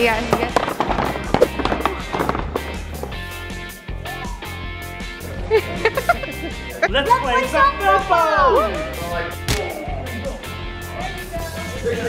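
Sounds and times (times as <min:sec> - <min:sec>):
background music: 0:00.0 - 0:12.0
cardboard blocks knocked over: 0:00.2 - 0:02.9.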